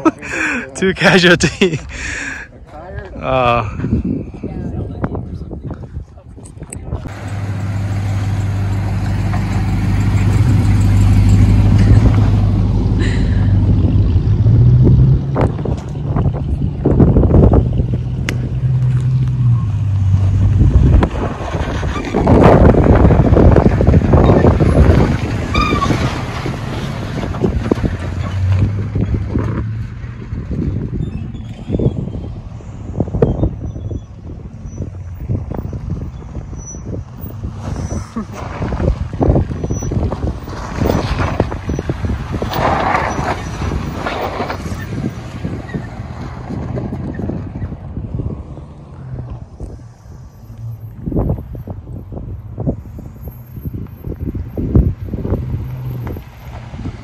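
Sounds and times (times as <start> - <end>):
tyres spinning in dirt: 36.5 - 48.0.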